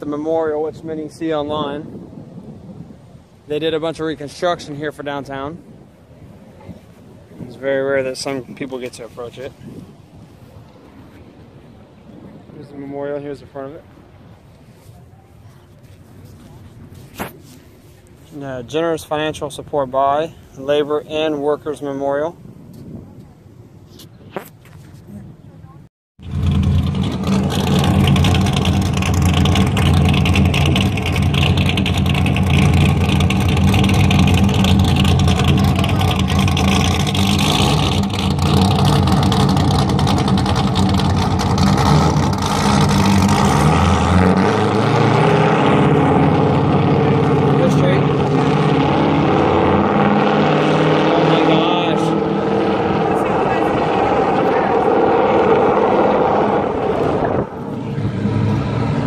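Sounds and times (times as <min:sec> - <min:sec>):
car engine idling and revving: 0:26.2 - 0:59.0.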